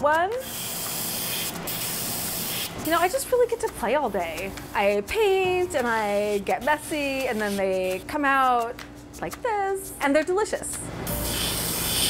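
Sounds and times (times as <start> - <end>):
airbrush spraying hiss: 11.1 - 12.0.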